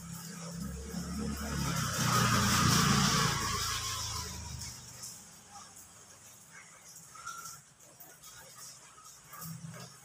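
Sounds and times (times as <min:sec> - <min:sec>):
rain hissing: 0:00.0 - 0:10.0
vehicle passing on wet street: 0:00.0 - 0:10.0.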